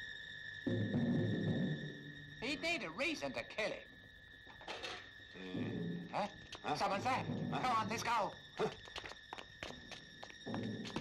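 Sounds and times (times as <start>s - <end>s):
quick footsteps: 8.6s - 11.0s.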